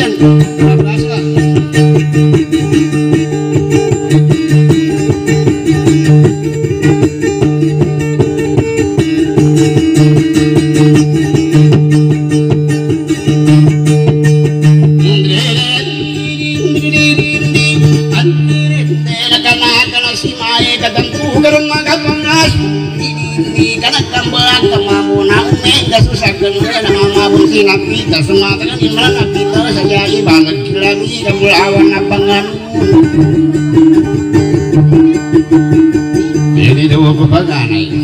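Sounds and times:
acoustic guitar picked rapidly: 0.0s - 38.0s.

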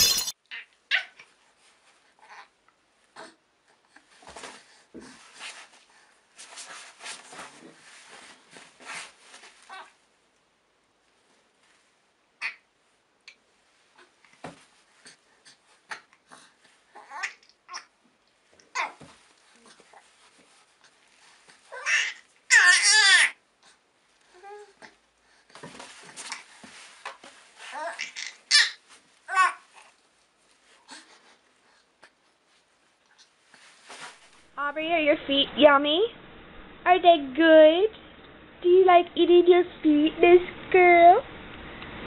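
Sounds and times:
soft rustling: 3.9s - 10.1s, 11.0s - 12.1s, 18.3s - 22.5s, 23.7s - 36.0s
baby squealing and gasping: 21.7s - 23.3s, 27.7s - 29.6s.

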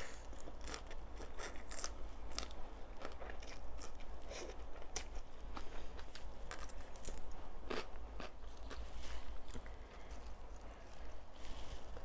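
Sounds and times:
lettuce crunching while chewed: 0.0s - 12.0s.

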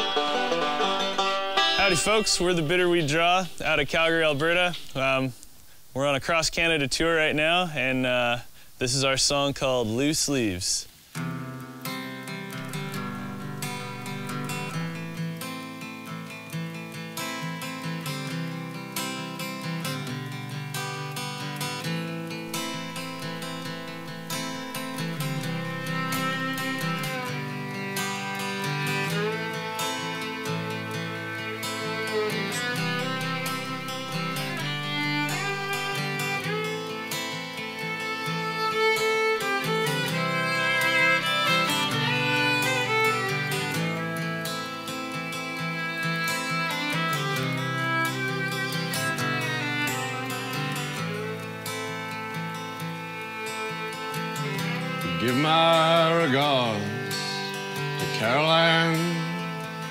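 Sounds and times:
fiddle: 0.0s - 5.3s, 11.2s - 59.9s
guitar strummed and picked: 0.0s - 5.3s, 11.0s - 59.9s
bluegrass string band: 0.0s - 5.4s, 12.2s - 59.9s.

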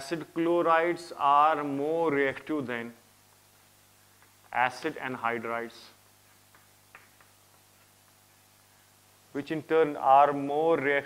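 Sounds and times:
low steady hum: 0.0s - 11.0s
chalk ticking on blackboard: 6.3s - 8.2s.

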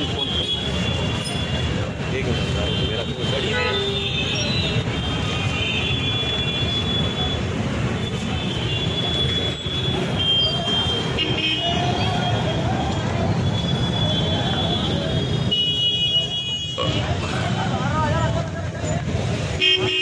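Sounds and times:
vehicle horns tooting: 0.0s - 12.6s, 13.4s - 17.0s, 19.4s - 20.0s.

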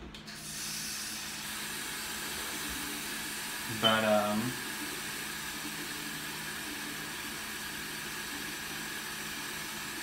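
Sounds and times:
water running into basin: 0.4s - 10.0s.

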